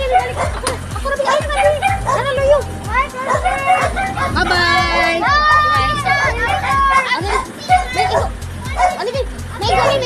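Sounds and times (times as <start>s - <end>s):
children talking and playing: 0.0s - 10.0s
music with low beat: 0.0s - 10.0s.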